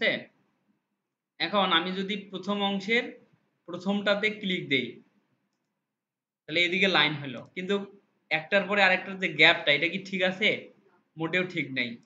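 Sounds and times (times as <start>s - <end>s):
man speaking: 1.4s - 5.1s, 6.5s - 12.0s.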